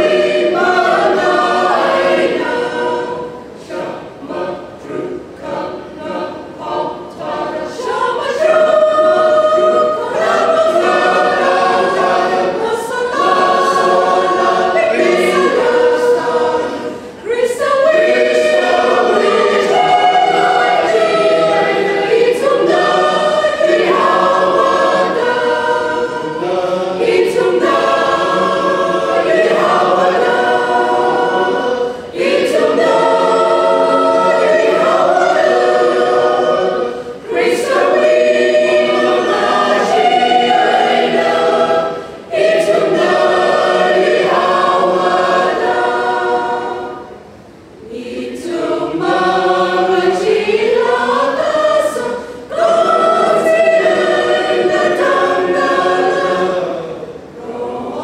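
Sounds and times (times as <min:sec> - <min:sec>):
mixed choir singing: 0:00.0 - 0:58.0.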